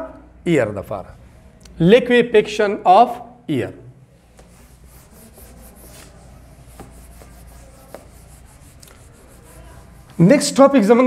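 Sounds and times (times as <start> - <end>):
eraser rubbing whiteboard: 4.3 - 10.7.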